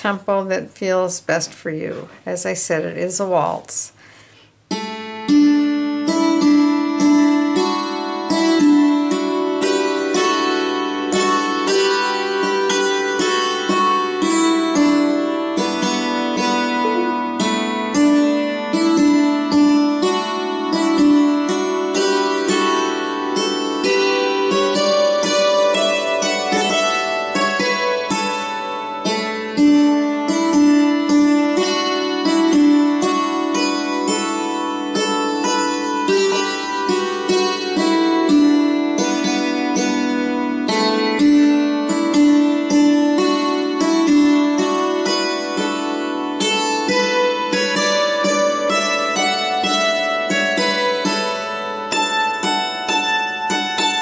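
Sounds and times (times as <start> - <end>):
hammered dulcimer waltz melody: 4.7 - 54.0.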